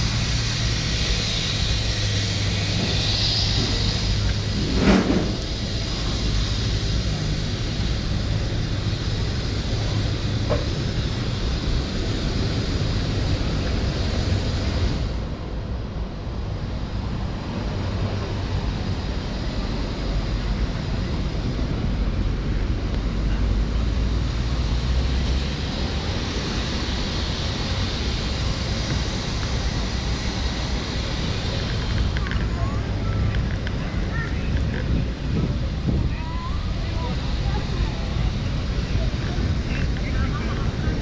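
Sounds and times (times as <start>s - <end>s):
traffic rumble: 0.0s - 41.0s
wind on microphone: 26.1s - 41.0s.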